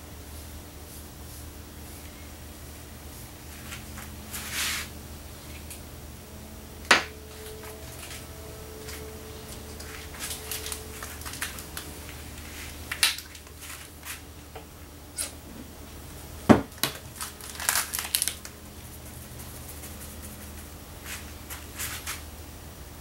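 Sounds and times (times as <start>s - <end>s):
faint low hum: 0.0s - 23.0s.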